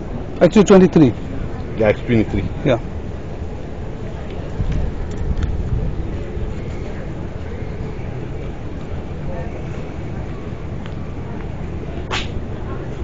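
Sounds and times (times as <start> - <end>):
faint voices: 0.0 - 13.0
road traffic rumble: 0.0 - 13.0.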